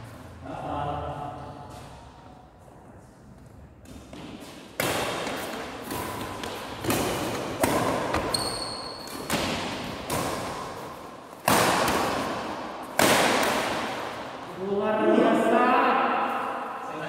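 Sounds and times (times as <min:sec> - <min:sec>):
rackets striking shuttlecock: 0:03.8 - 0:14.4
short high squeak: 0:08.3 - 0:09.0.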